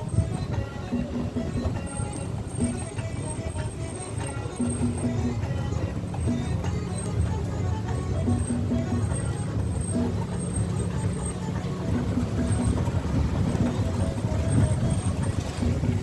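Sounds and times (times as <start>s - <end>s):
car engine and tyres rumbling: 0.0s - 16.0s
soft background music: 0.0s - 16.0s.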